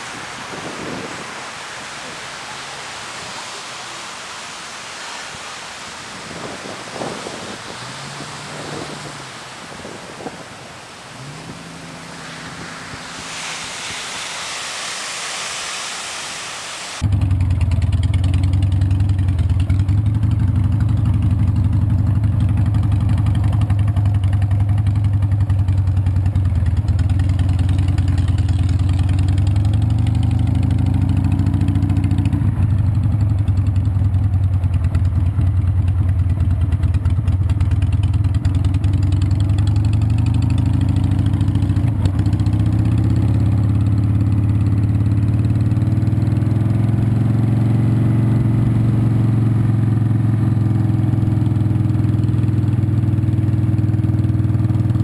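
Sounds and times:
motorcycle engine revving: 6.2 - 14.0, 17.0 - 55.0.

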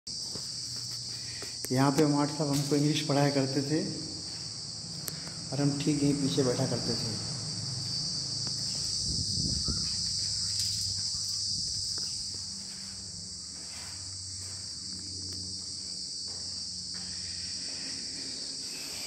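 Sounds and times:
high-pitched insect chorus: 0.1 - 19.0.

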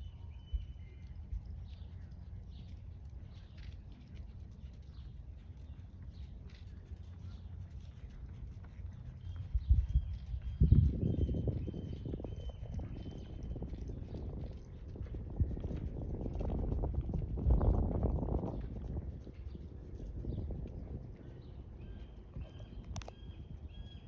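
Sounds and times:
horse hoofbeats on sand: 2.5 - 22.8.

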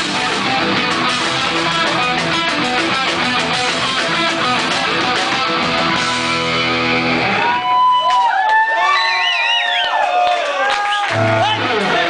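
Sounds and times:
live rock band playing: 0.0 - 7.9, 11.1 - 12.0.

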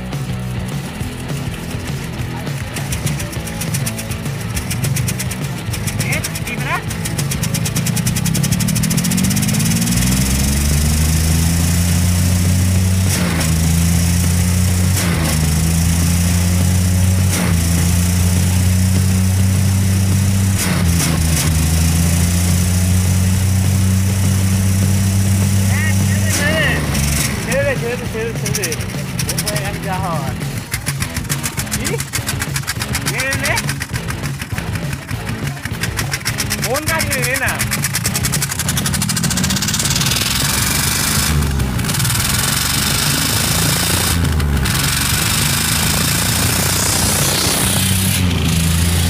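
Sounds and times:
car engine revving: 0.0 - 49.0.

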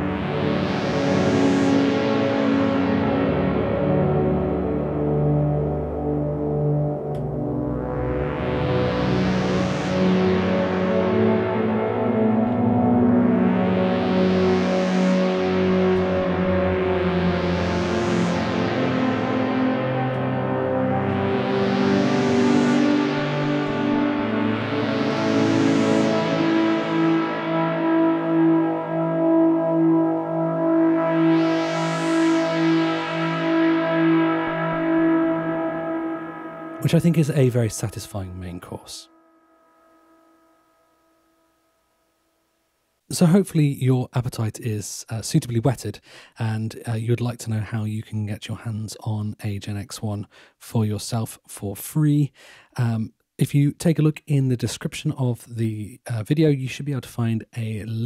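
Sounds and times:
synth pad with reverb: 0.0 - 41.7.

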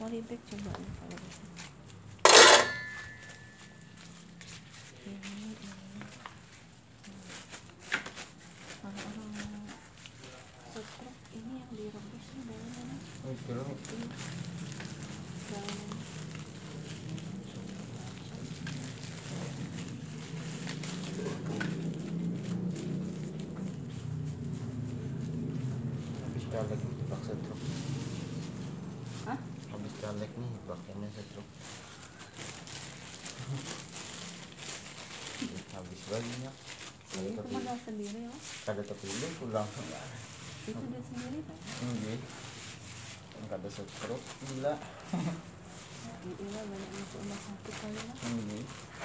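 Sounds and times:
sharp ringing clatter: 2.3 - 3.9.

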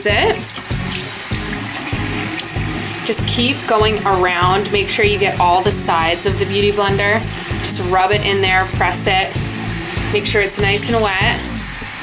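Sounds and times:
background music with steady beat: 0.0 - 12.0
tap running into sink: 0.1 - 5.6.

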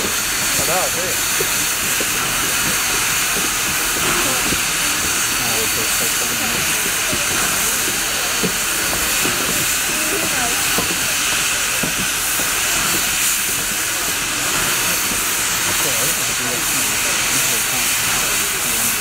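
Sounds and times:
steam locomotive venting steam: 0.0 - 19.0.

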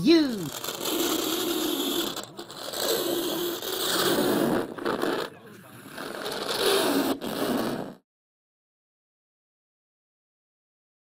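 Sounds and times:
fingernails scraping chalkboard: 0.4 - 8.0.

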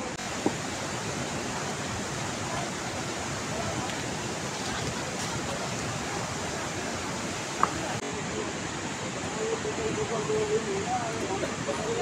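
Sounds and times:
fast mountain river rushing: 0.0 - 12.0.

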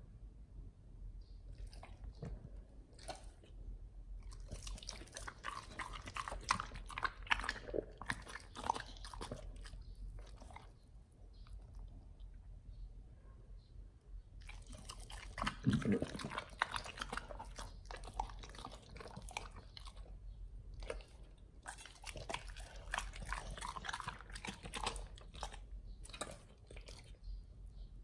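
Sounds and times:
dogs chewing wet bites: 4.2 - 10.9, 14.4 - 20.1, 20.8 - 27.2.

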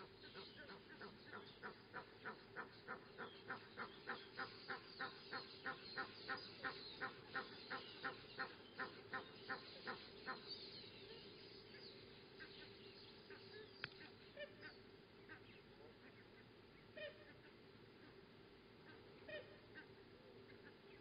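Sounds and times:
bird calling in short calls: 0.0 - 11.8, 12.4 - 18.2, 18.8 - 21.0.

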